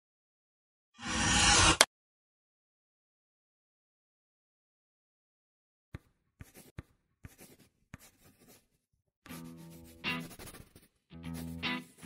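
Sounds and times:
pencil sketching on paper: 0:06.0 - 0:12.0.

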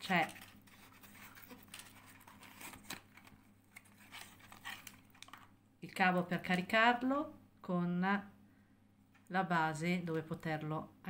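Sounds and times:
plastic bag rustling: 0:00.0 - 0:05.5.

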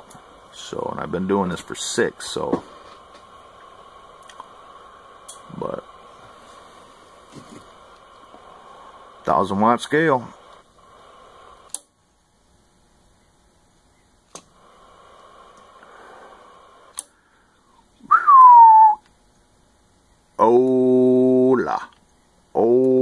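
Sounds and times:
buzzy held tones: 0:00.0 - 0:11.7, 0:12.6 - 0:19.1, 0:19.8 - 0:23.0
faint radio static: 0:00.0 - 0:23.0
radio switch clicks: 0:14.3 - 0:14.6
falling whistle into microphone: 0:18.0 - 0:19.0.

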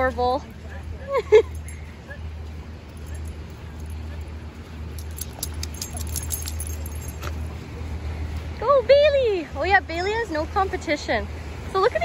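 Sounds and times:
light metallic jingling: 0:00.0 - 0:09.2.

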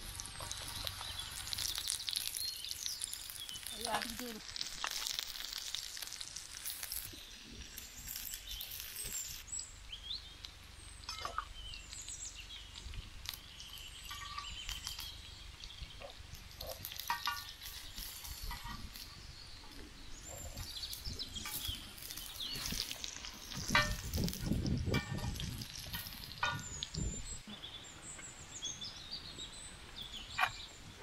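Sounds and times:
food sizzling in oil: 0:00.0 - 0:27.5.

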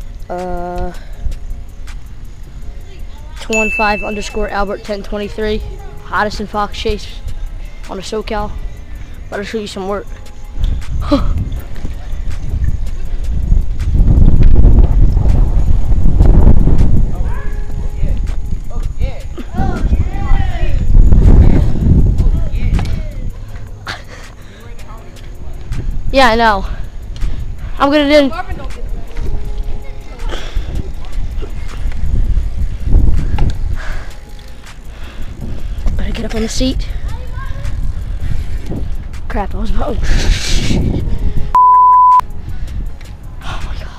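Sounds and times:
bike clicking: 0:00.0 - 0:41.6, 0:42.3 - 0:43.9
wind buffeting microphone: 0:00.0 - 0:41.6, 0:42.3 - 0:43.9
bike clicks and rattles: 0:10.1 - 0:17.1, 0:28.6 - 0:39.9
bicycle tyre noise: 0:10.1 - 0:27.8, 0:29.0 - 0:41.5.

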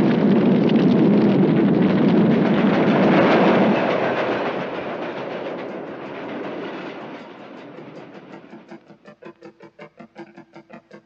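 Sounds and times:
large fire rushing: 0:00.0 - 0:08.7.

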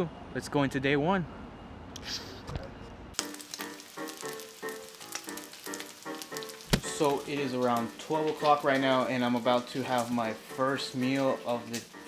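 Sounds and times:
background music: 0:03.2 - 0:12.0
bacon sizzling in a skillet: 0:03.2 - 0:12.0
sharp thump: 0:06.7 - 0:06.9.

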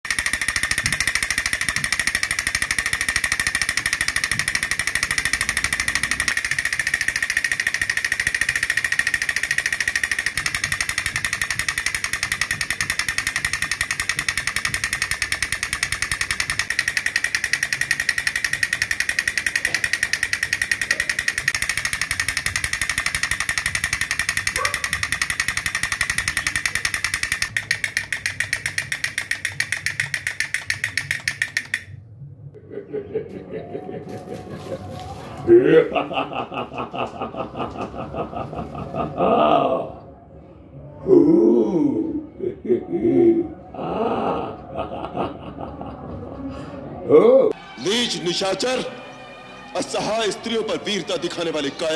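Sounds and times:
toy drum rattling: 0:00.0 - 0:32.0, 0:49.8 - 0:51.9.

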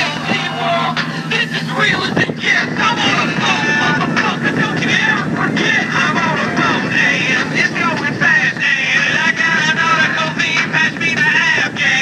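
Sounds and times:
motorboat engines running: 0:00.0 - 0:12.0
water rushing against hull: 0:00.0 - 0:12.0
wind on microphone: 0:00.0 - 0:12.0.

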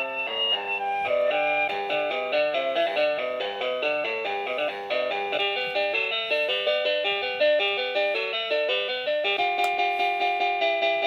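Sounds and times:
toy playing electronic children's tune: 0:00.0 - 0:11.0.

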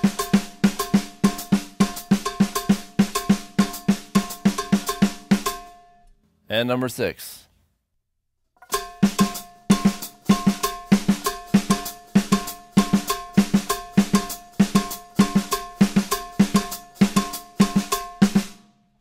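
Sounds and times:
drum kit playing latin rhythm: 0:00.0 - 0:05.8, 0:08.7 - 0:18.6.

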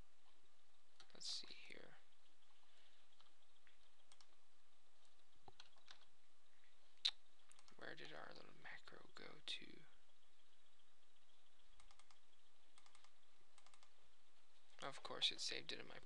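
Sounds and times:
computer mouse clicking: 0:03.1 - 0:04.4, 0:05.0 - 0:06.1, 0:07.0 - 0:08.3, 0:10.1 - 0:14.0.

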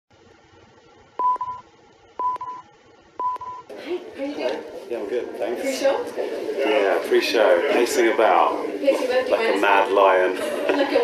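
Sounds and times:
short electronic beeps: 0:01.2 - 0:01.6, 0:02.2 - 0:03.7.

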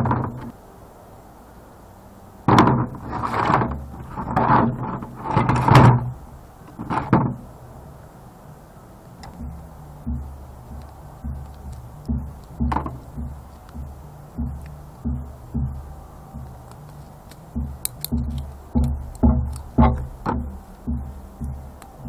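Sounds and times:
plastic scrap scraping and clattering: 0:00.0 - 0:00.5, 0:02.5 - 0:07.5
sharp knock: 0:02.5 - 0:03.0, 0:17.4 - 0:22.0.

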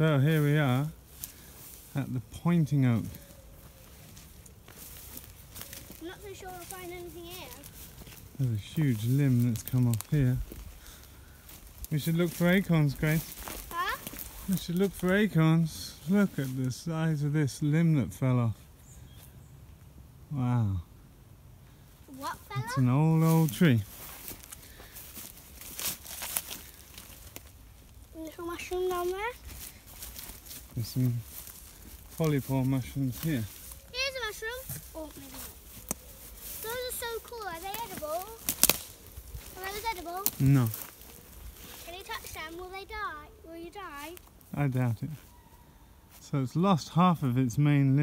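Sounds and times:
footsteps in leaf litter: 0:00.0 - 0:16.8, 0:22.1 - 0:46.3
small crackles: 0:02.8 - 0:15.3, 0:22.1 - 0:45.4.

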